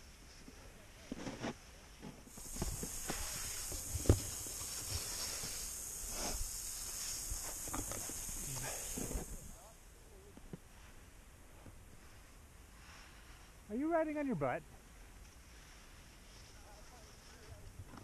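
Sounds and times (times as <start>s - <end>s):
snowboard scraping over snow: 2.2s - 9.6s.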